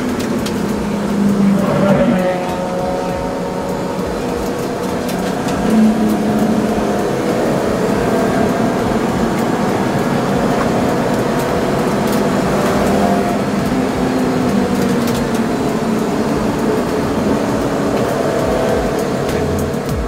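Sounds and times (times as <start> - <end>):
car engine from inside cabin: 0.0 - 20.0.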